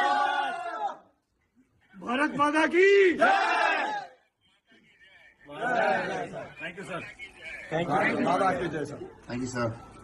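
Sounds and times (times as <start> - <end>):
men shouting a cheer: 0.0 - 1.0, 2.6 - 4.2.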